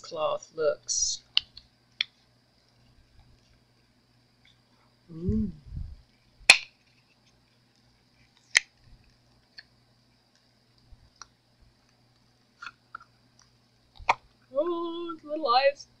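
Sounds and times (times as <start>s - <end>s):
faint ticks and crinkles: 1.2s - 5.0s, 6.0s - 14.6s
silicone mold snapping: 6.5s - 6.8s, 8.4s - 10.5s, 12.6s - 14.3s.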